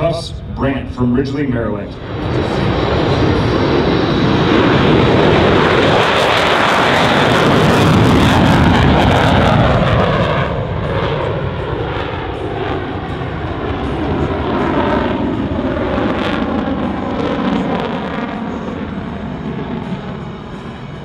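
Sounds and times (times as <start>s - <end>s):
jet engine roaring with crackle: 0.0s - 21.0s.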